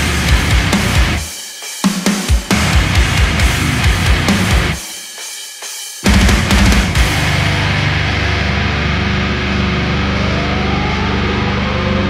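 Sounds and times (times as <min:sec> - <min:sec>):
distorted guitar and bass drone: 0:00.0 - 0:01.3, 0:02.5 - 0:04.8, 0:06.0 - 0:12.0.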